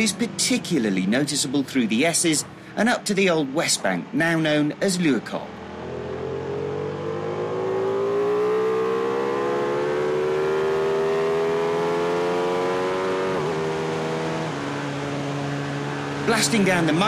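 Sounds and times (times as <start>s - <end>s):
motorcycle engine accelerating: 5.6s - 16.3s.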